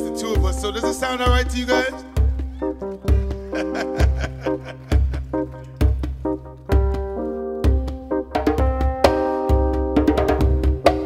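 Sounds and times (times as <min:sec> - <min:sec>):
sustained keyboard chords: 0:00.0 - 0:11.0
djembe hand strikes: 0:07.7 - 0:11.0.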